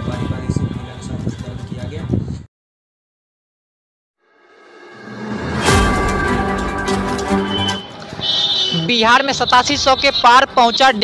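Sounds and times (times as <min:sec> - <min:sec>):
background music: 0:04.5 - 0:11.0.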